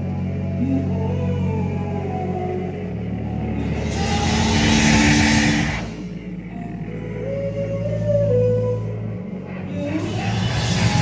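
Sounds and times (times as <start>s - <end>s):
electric guitars: 2.6s - 11.0s
drum kit: 3.6s - 6.1s, 9.9s - 11.0s.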